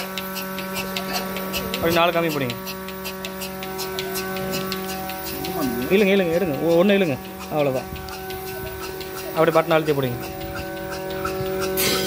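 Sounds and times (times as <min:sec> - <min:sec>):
milking machine motor hum: 0:00.0 - 0:12.0
quick even ticking: 0:00.0 - 0:12.0.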